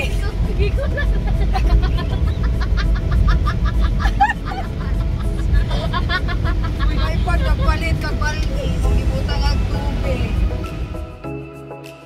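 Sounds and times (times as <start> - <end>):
car cabin road rumble: 0.0 - 11.1.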